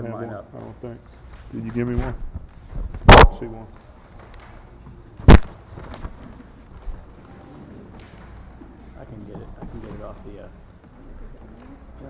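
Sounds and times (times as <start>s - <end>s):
faint room noise: 0.0s - 12.0s
sharp loud thump: 3.0s - 3.4s.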